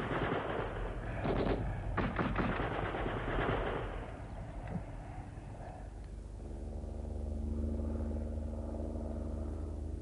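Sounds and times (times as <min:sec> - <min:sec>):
machine-gun fire: 0:00.0 - 0:04.0
low steady rumble: 0:00.0 - 0:10.0.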